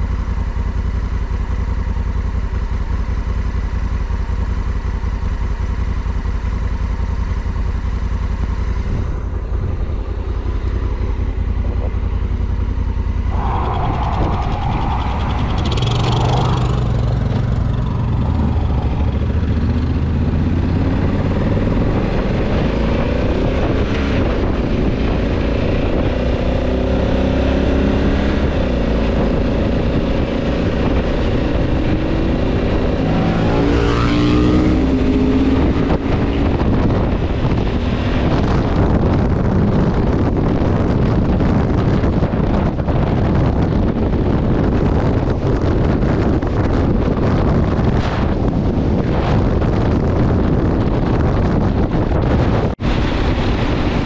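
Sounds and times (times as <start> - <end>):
motorcycle engine revving through gears: 0.0 - 54.0.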